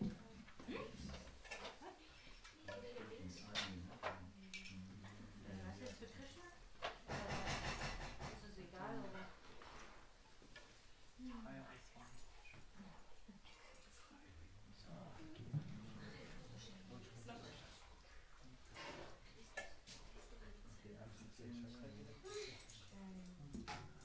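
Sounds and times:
objects knocking and clicking: 0:06.8 - 0:08.5.

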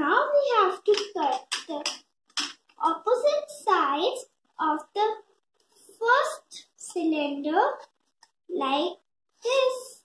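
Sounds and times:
young girl talking: 0:00.0 - 0:02.0, 0:02.8 - 0:07.9, 0:08.5 - 0:10.0.

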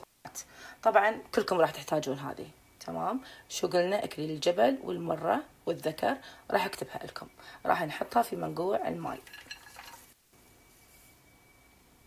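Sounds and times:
faint steady hiss: 0:00.0 - 0:12.0
dried herbs rustling into pot: 0:08.0 - 0:11.3
thin high tone: 0:10.4 - 0:12.0.

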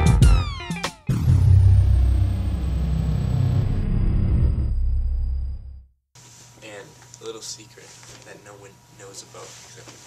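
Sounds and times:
low rumble: 0:01.1 - 0:06.0.

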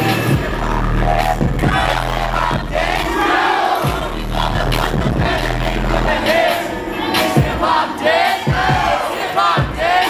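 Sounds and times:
heavy bass: 0:00.0 - 0:10.0
live hip-hop band playing: 0:00.0 - 0:10.0
drum hits: 0:03.8 - 0:05.7, 0:06.3 - 0:07.8.

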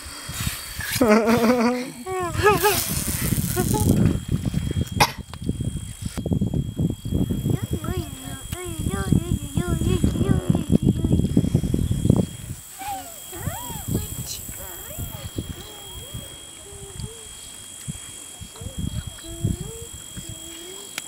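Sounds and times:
faint high-pitched whine: 0:00.0 - 0:21.0
loud low rumbling: 0:02.2 - 0:20.3.

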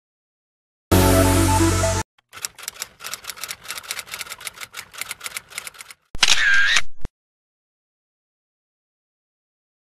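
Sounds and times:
typewriter-style clicking: 0:02.2 - 0:06.1.

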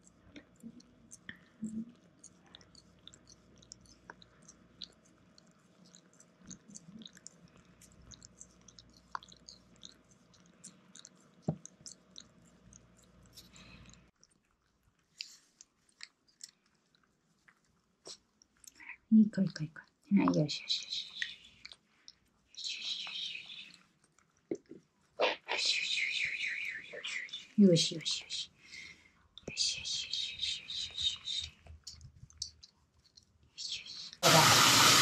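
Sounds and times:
teeth clicking on rubber: 0:00.0 - 0:18.9, 0:30.4 - 0:33.4.

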